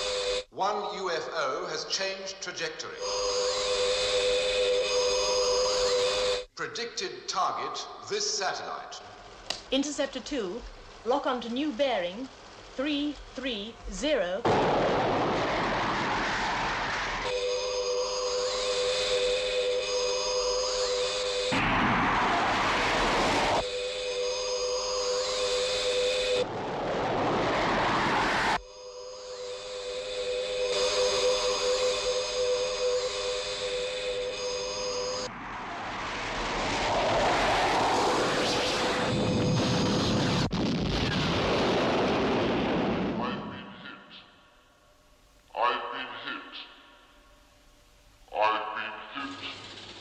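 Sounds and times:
electronic sci-fi whine: 0:00.0 - 0:00.5, 0:03.0 - 0:06.5, 0:11.1 - 0:42.8
rocket engine roar: 0:14.4 - 0:43.6.

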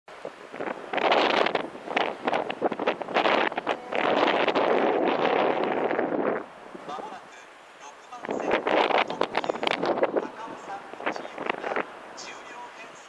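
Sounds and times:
wind buffeting microphone: 0:00.1 - 0:13.0.

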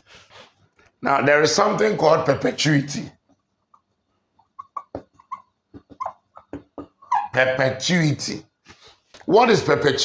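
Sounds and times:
marker squeaking on whiteboard: 0:03.6 - 0:07.8.

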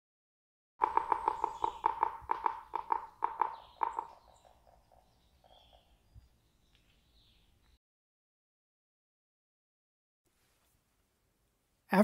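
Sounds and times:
bird calling sharp notes: 0:00.8 - 0:07.4.

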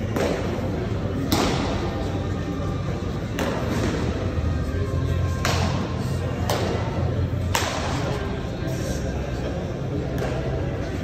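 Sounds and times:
baseball smack with echo: 0:00.0 - 0:02.1, 0:03.2 - 0:04.2, 0:05.4 - 0:08.1
steady low hum: 0:00.0 - 0:11.0.

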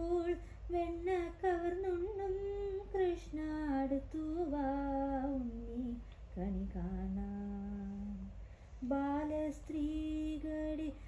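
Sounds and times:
woman singing unaccompanied: 0:00.0 - 0:11.0.

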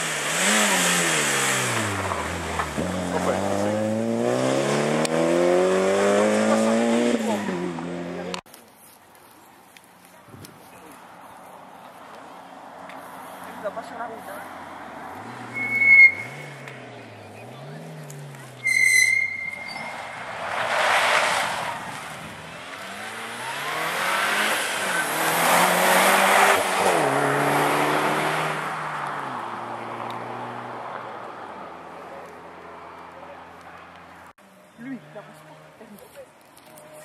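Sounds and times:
rally car engine revving: 0:00.0 - 0:08.4, 0:15.2 - 0:30.7
shrill whistle blasts: 0:15.5 - 0:16.4, 0:18.6 - 0:20.0
gravel spraying: 0:17.7 - 0:23.5.

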